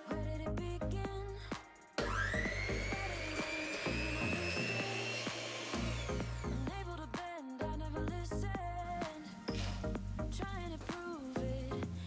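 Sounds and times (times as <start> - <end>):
background music: 0.0 - 12.0
electric hand mixer whining: 2.0 - 6.8.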